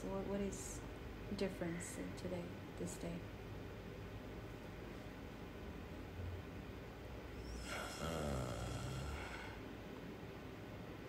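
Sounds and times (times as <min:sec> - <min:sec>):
man sighing: 0:07.5 - 0:09.6.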